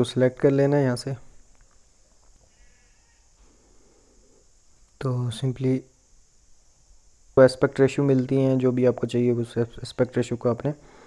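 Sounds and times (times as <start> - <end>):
man speaking: 0.0 - 1.3, 5.0 - 5.9, 7.4 - 10.8
steady hiss: 0.0 - 11.0.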